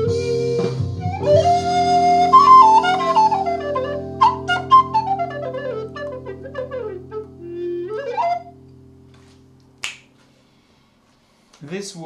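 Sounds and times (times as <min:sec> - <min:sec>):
wooden recorder melody: 0:00.0 - 0:08.7
backing-track chord: 0:00.0 - 0:09.8.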